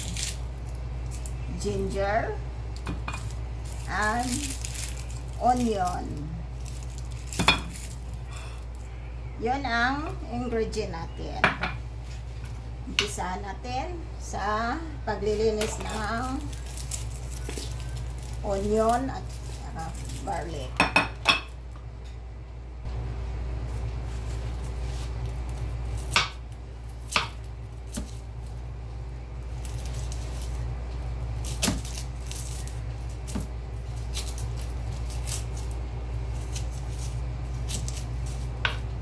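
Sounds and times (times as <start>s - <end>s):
crackly cutting of onion: 0.0s - 1.4s, 2.7s - 8.8s, 15.6s - 21.6s, 24.2s - 28.7s, 29.4s - 39.0s
steady low hum: 0.0s - 39.0s.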